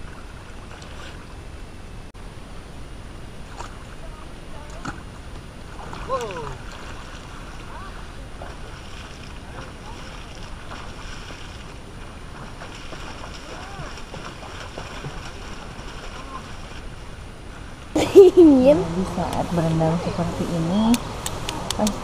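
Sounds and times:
water splashing and sloshing: 0.0s - 1.9s, 3.3s - 22.0s.

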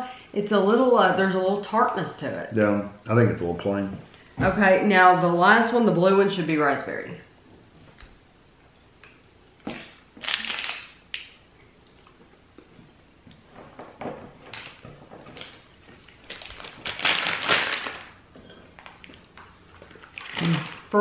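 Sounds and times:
plastic bag crinkling: 9.7s - 11.4s, 14.4s - 21.0s.

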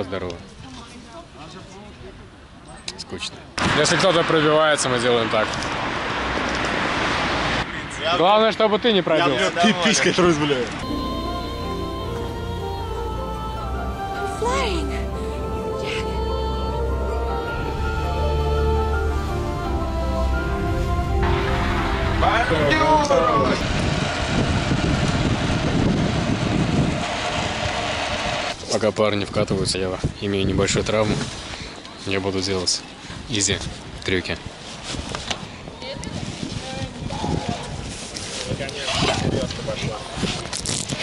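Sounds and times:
street noise: 0.0s - 29.3s
wind rush on microphone: 22.0s - 31.6s, 33.1s - 41.0s
man talking: 22.2s - 23.7s.

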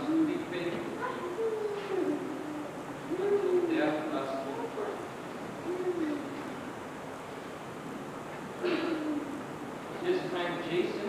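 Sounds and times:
high-pitched voice gliding tones: 1.0s - 5.0s, 5.6s - 6.6s.

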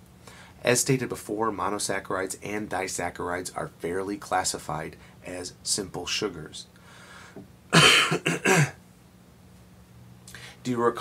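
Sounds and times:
man coughing: 7.7s - 8.8s.

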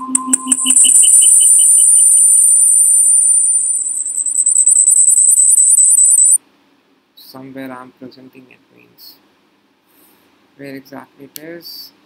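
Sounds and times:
audio feedback squeal: 0.0s - 6.4s
pulsing beep: 0.0s - 6.4s.

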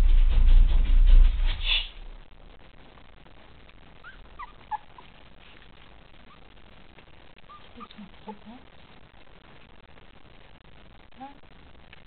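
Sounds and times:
puppies squeaking and whimpering: 4.0s - 5.2s, 7.4s - 8.0s.

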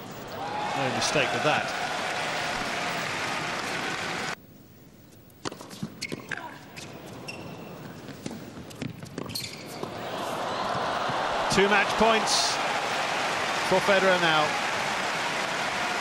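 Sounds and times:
arena noise: 0.0s - 4.4s, 9.7s - 16.0s
crowd applause: 0.4s - 4.4s, 10.1s - 16.0s.

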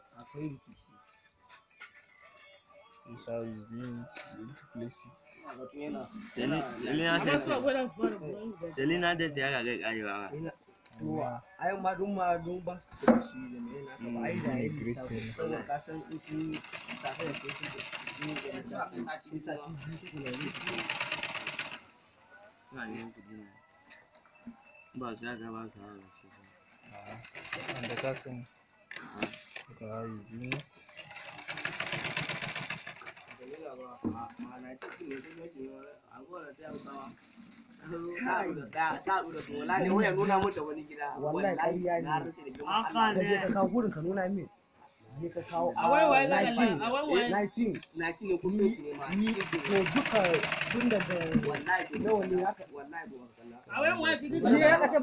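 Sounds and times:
sewing machine stitching: 16.1s - 18.8s, 19.8s - 21.8s, 27.0s - 28.3s, 30.5s - 33.5s, 48.9s - 52.6s.

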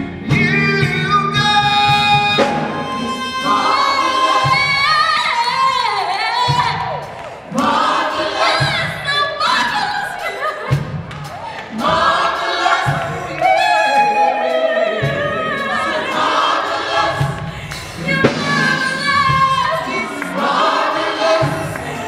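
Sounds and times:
gospel choir singing: 0.0s - 22.0s.

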